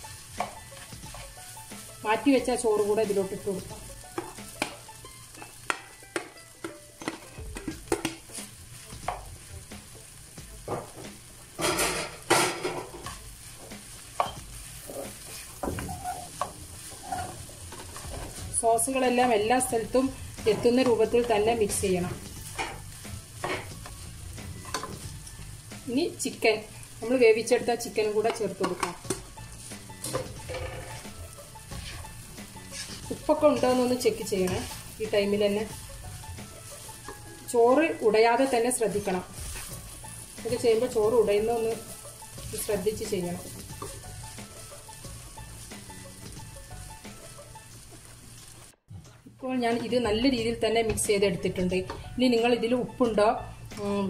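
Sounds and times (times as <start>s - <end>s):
food sizzling: 0.0s - 54.0s
spatula scraping a wok: 11.5s - 18.7s, 28.7s - 46.8s.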